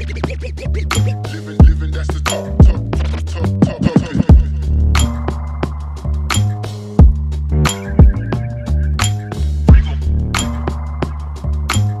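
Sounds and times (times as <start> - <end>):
deep bassline: 0.0 - 12.0
hip hop beat: 0.0 - 12.0
swooping pitch-bent sounds: 2.6 - 12.0.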